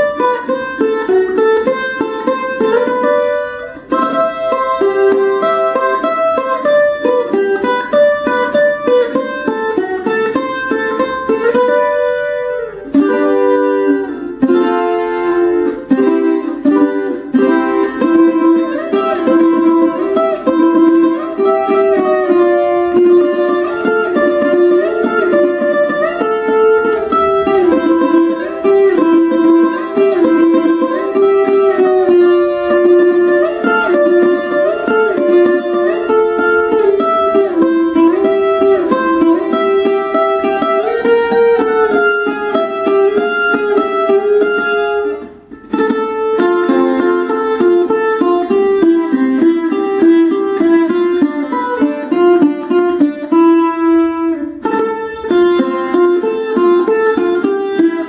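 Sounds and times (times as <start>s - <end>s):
steel-strung guitar picking lively melody: 0.0s - 58.0s.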